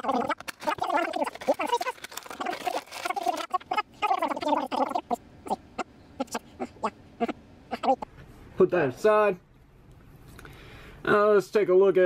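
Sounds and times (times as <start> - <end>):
squeaky plastic crinkling: 0.0 - 8.0.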